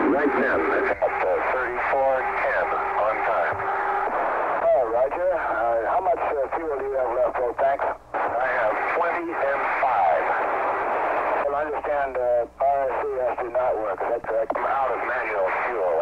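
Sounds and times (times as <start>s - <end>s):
voices over radio link: 0.0s - 16.0s.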